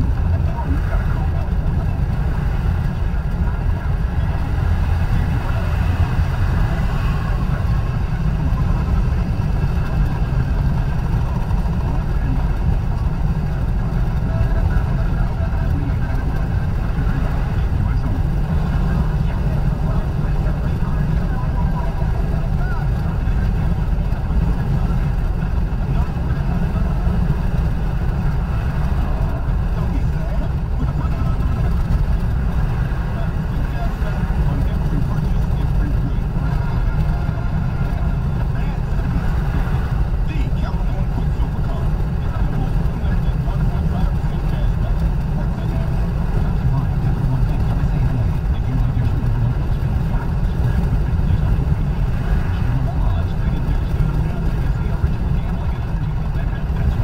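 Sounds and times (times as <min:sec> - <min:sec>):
car cabin road and engine noise: 0:00.0 - 0:57.0.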